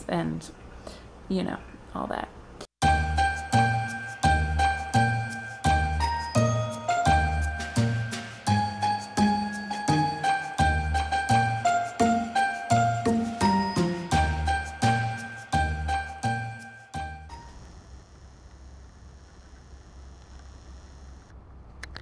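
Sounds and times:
chiming background music: 2.8 - 17.5.

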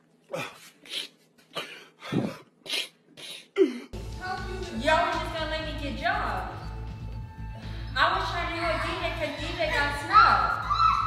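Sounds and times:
man sobbing and sniffing: 0.3 - 4.0.

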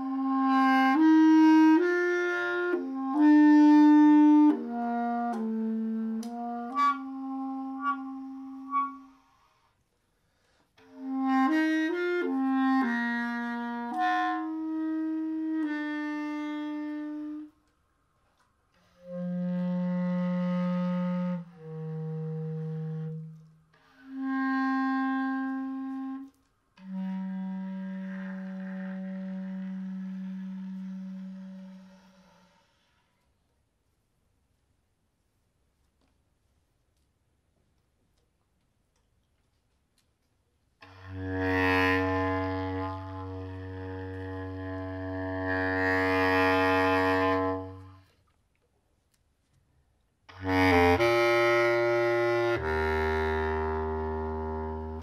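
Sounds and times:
bass clarinet improvising: 0.0 - 9.7, 10.8 - 17.7, 18.8 - 33.1, 40.8 - 48.2, 50.3 - 55.0.

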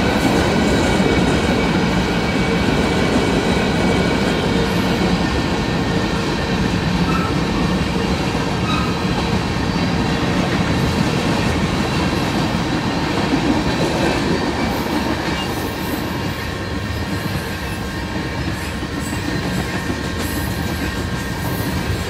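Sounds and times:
freight train wheels rumbling on rails: 0.0 - 22.0.

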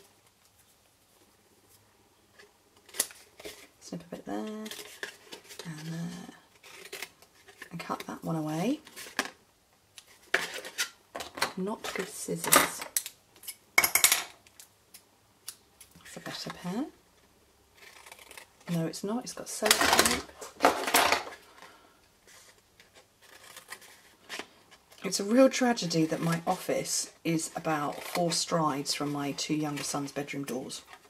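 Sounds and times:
handling of cardstock: 17.8 - 31.0.

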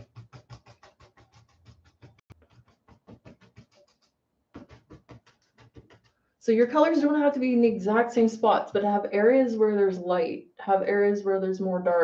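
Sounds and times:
paintbrush scrubbing paint: 0.0 - 6.3.

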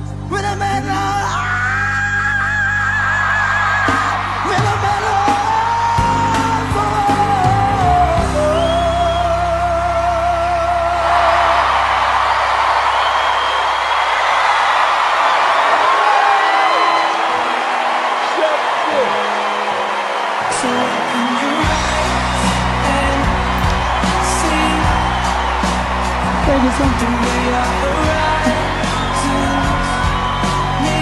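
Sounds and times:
audience cheering and applauding: 0.7 - 31.0.

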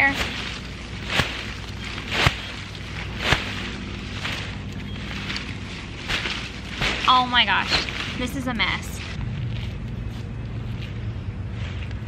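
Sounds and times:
dull thumps: 0.0 - 9.2
crumbling soil: 0.0 - 12.0
rustling leaves: 0.0 - 12.0.

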